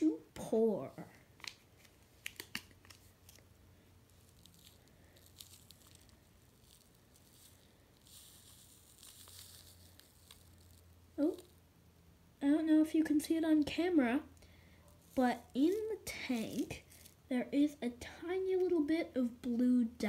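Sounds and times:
paper sachet crinkling: 1.4 - 3.5, 4.1 - 11.5, 16.5 - 17.2
soft hiss of pouring: 3.8 - 11.5.

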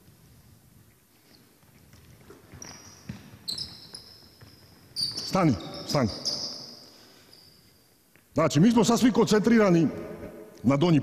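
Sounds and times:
sneakers squeaking on hardwood: 1.2 - 7.9
basketball thuds: 2.4 - 3.5.

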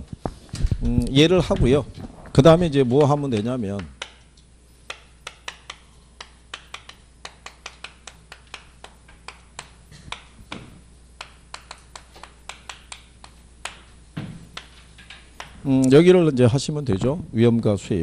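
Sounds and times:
chalk tapping on blackboard: 2.8 - 15.7.

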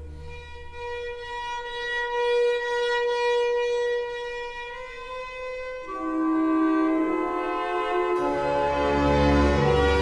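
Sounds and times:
wind instrument long note: 5.8 - 10.0.

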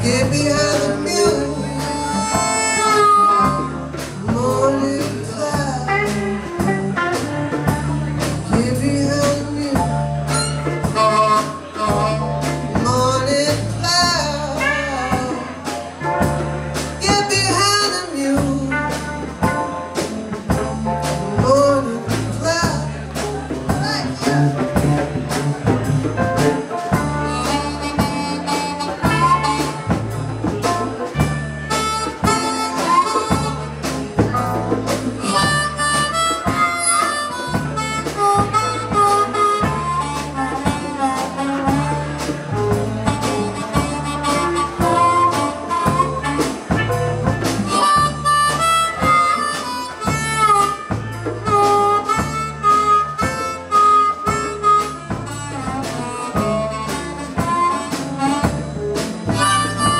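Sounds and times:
drums: 0.0 - 59.9
electric bass: 0.0 - 59.9
harmonica solo: 1.8 - 3.8, 31.7 - 33.8, 35.2 - 41.9, 43.4 - 59.9.

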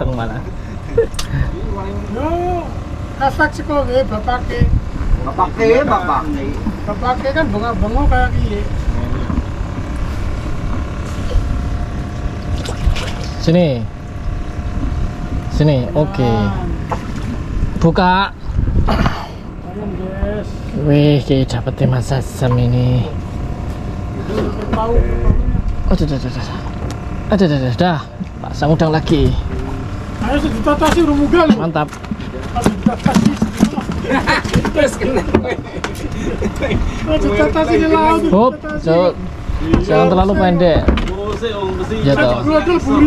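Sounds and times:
steady low rumble: 0.0 - 43.0.

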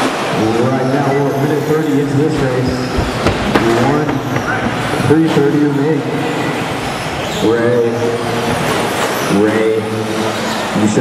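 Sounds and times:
crowd voices: 0.0 - 11.0
sharp knocks: 2.0 - 5.8
radio-controlled trucks racing: 6.5 - 11.0.

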